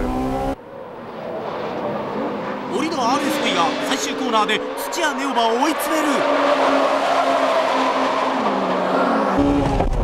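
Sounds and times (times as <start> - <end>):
race car engines running hard: 0.0 - 10.0
tyres squealing: 2.7 - 9.3.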